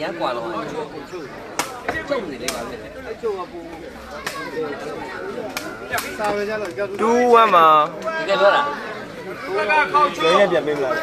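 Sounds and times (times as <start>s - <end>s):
crowd of men talking and calling: 0.0s - 11.0s.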